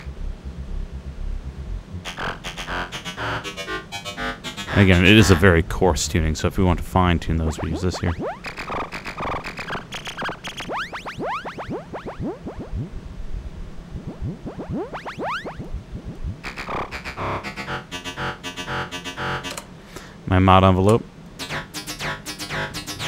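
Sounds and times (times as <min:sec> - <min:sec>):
synth bass notes: 0:00.0 - 0:19.6.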